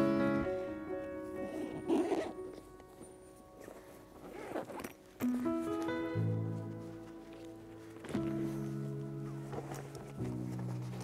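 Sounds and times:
background music: 0:00.0 - 0:11.0
zipper being pulled: 0:01.5 - 0:02.7, 0:03.6 - 0:05.4.

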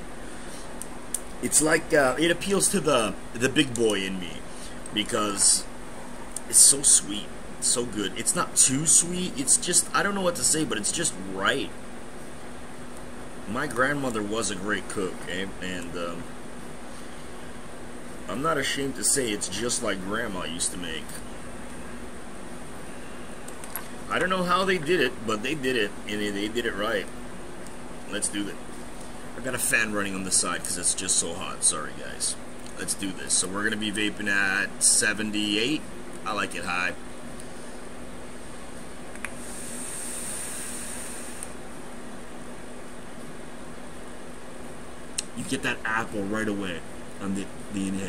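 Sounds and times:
electric fan running: 0:00.0 - 0:48.0
high hiss of air drawn: 0:39.4 - 0:41.6.

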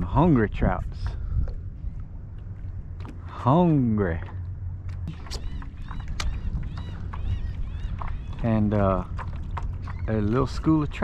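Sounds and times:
low wind rumble on microphone: 0:00.0 - 0:11.0
sharp clicks: 0:04.9 - 0:07.2
high bird chirps: 0:05.1 - 0:08.5.

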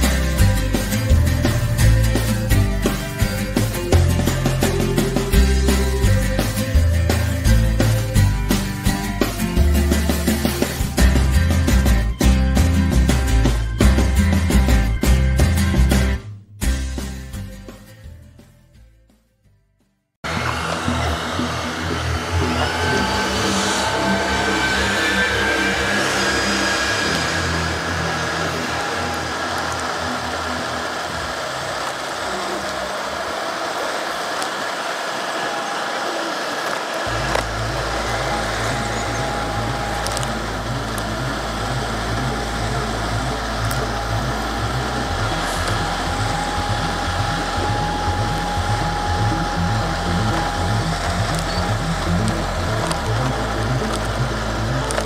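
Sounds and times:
electric motor whining: 0:20.2 - 0:55.0
low rolling rumble: 0:20.3 - 0:33.6, 0:37.1 - 0:55.0.

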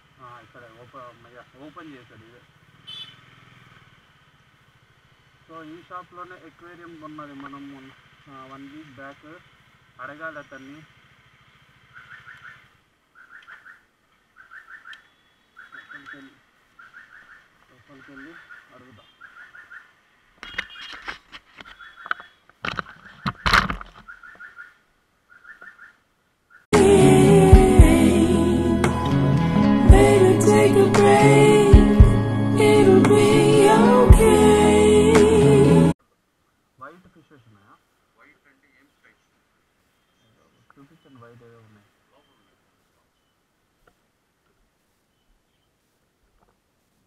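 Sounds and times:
small birds chirping: 0:10.0 - 0:11.0, 0:11.8 - 0:21.0, 0:21.6 - 0:26.7, 0:38.8 - 0:43.5, 0:45.0 - 0:45.8
knocks and clatter: 0:20.6 - 0:24.1
loud background music: 0:26.8 - 0:35.9.

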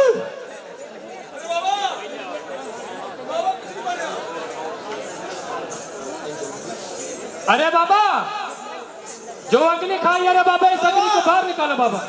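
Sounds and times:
crowd calls and chatter: 0:00.0 - 0:12.0.

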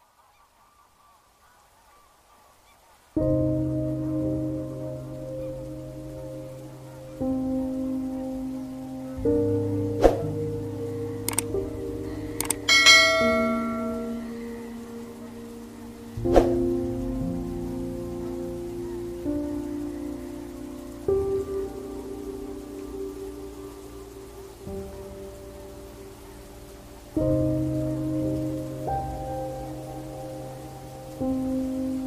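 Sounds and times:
waterfowl honking: 0:00.0 - 0:16.2, 0:17.5 - 0:32.0
background music chords: 0:03.2 - 0:32.0
mouse clicks: 0:11.3 - 0:11.5, 0:12.4 - 0:12.6
bell ding: 0:12.7 - 0:14.1.

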